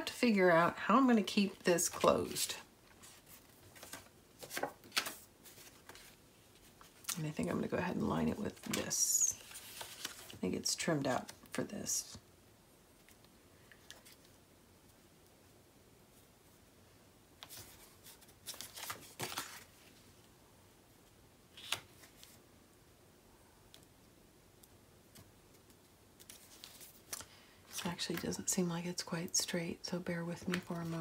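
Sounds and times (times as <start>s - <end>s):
paper rustling and sliding: 1.8s - 6.2s, 8.6s - 10.4s.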